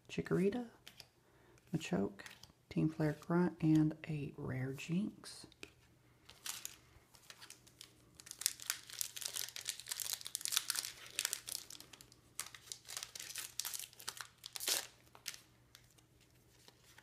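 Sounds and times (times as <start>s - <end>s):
foil wrapper crinkling and tearing: 6.3s - 17.0s.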